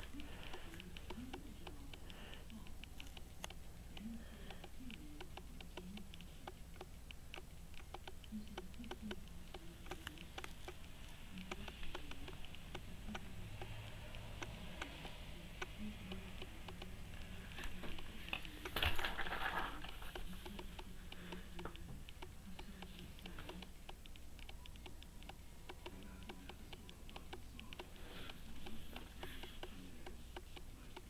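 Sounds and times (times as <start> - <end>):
low steady hum: 0.0 - 31.0.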